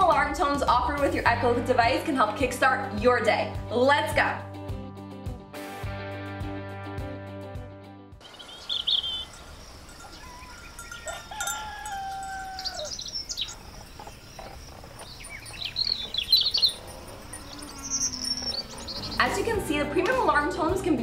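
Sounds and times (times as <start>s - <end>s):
birdsong alarm tone: 8.2s - 19.5s.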